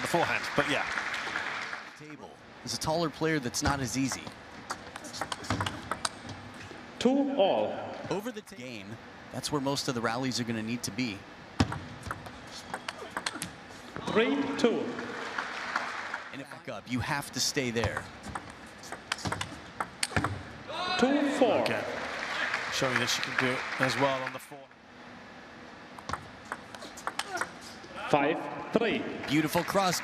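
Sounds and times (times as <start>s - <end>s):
table tennis ball clicking: 11.6s - 13.5s, 17.9s - 20.4s, 26.0s - 27.6s.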